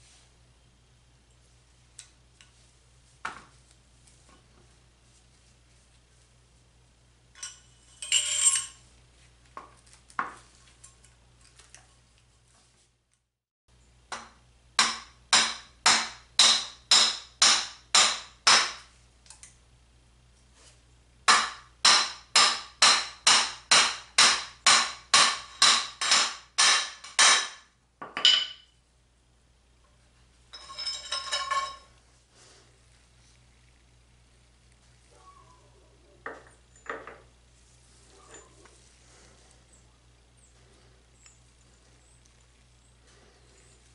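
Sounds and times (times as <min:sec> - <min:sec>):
ringing metal clink: 0:07.4 - 0:08.8, 0:30.5 - 0:31.9
hammer striking steel punch: 0:14.1 - 0:18.8, 0:21.3 - 0:27.6.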